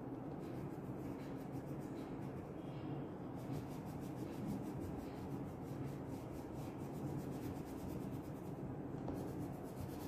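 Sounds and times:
crayon scratching on paper: 0.3 - 2.5, 3.3 - 10.0.

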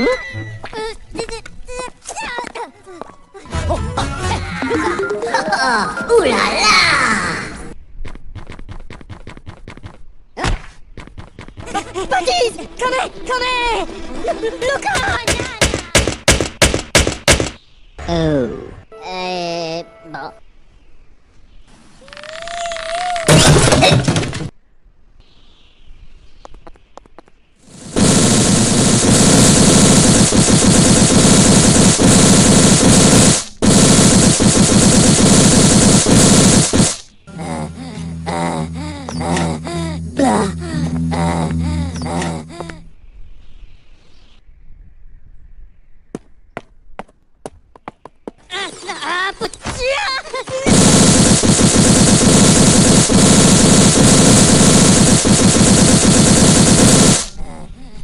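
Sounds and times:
rapid cartoon rattle: 27.7 - 37.1, 50.7 - 57.4.

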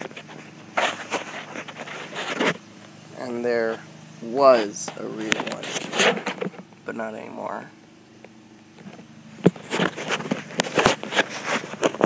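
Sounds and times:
footsteps in grass: 0.0 - 3.0
phone handling rustle: 4.9 - 6.7, 8.8 - 12.0.

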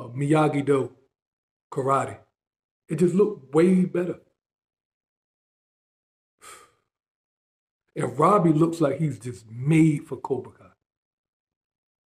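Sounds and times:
man sighing breath: 6.4 - 6.9.

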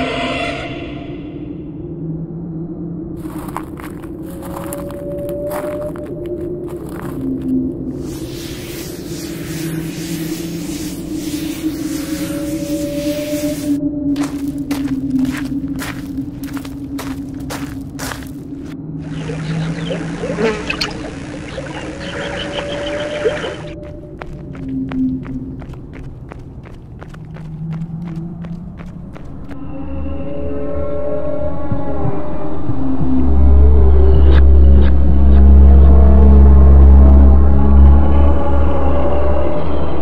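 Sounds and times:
steady low drone: 0.0 - 40.0
footsteps: 3.2 - 7.6, 12.8 - 19.9, 23.4 - 29.6
deep bass rumble: 3.2 - 8.1, 10.3 - 26.2.

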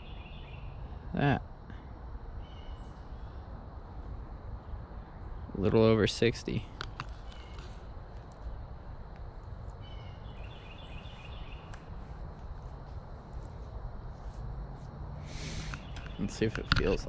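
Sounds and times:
bird calling: 2.4 - 3.5, 6.8 - 7.9, 9.8 - 12.0, 15.2 - 17.0.

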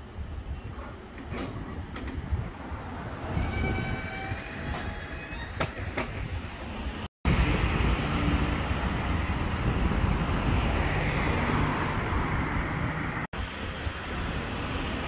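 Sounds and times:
cars driving past: 7.3 - 13.3.

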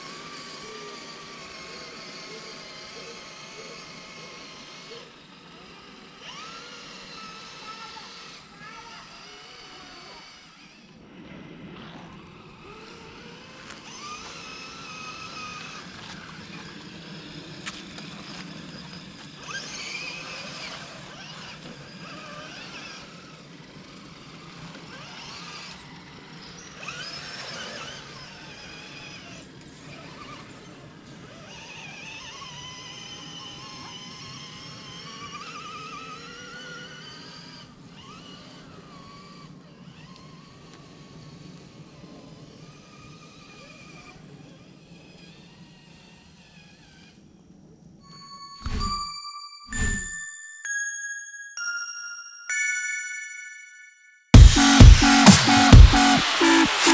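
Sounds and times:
rc car motors whining: 0.0 - 48.0.

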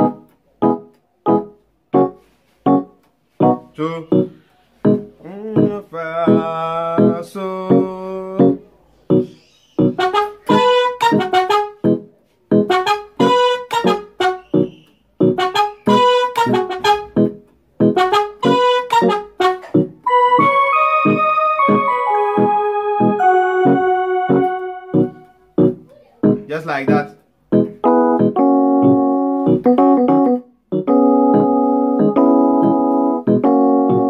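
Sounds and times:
keyboard piano chords: 0.0 - 34.0.

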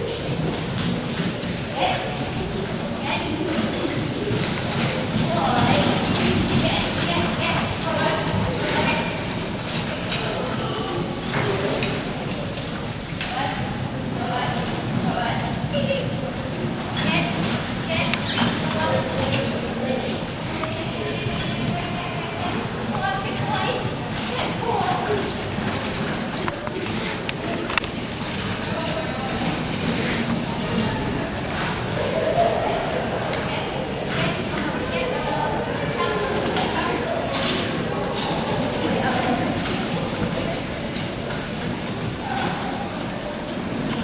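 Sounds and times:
steady background din: 0.0 - 44.0
indistinct voices: 1.4 - 44.0.

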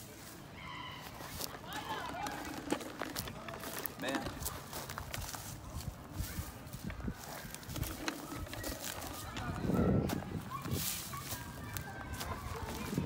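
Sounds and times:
footsteps on pine needles: 0.0 - 13.0.

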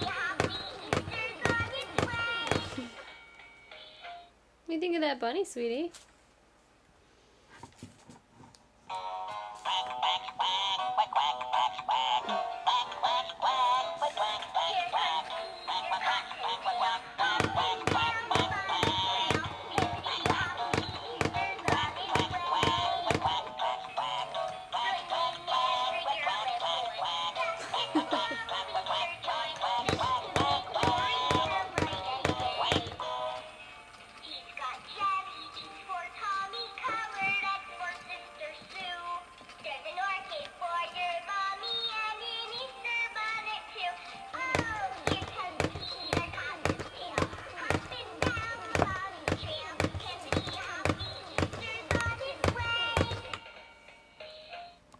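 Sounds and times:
toy playing synthetic sung melody: 0.0 - 2.9, 8.9 - 54.8
music: 0.0 - 4.4, 8.9 - 54.9.

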